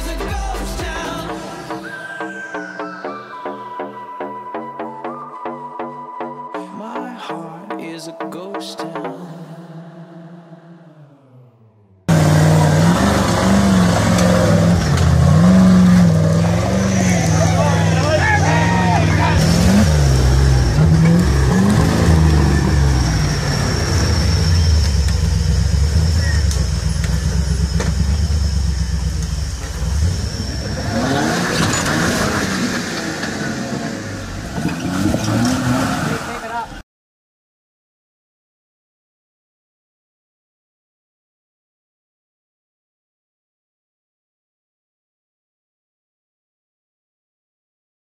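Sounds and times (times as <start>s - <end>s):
off-road vehicle engine revving: 12.0s - 36.8s.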